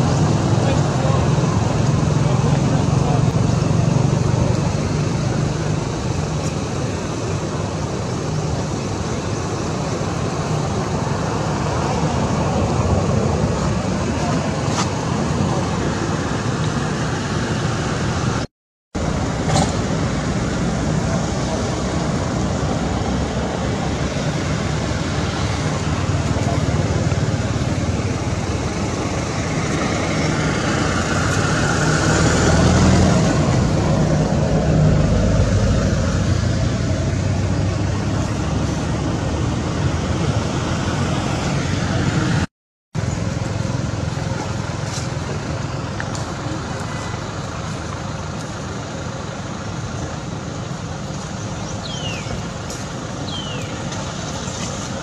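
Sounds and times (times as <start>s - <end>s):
outdoor background noise: 0.0s - 55.0s.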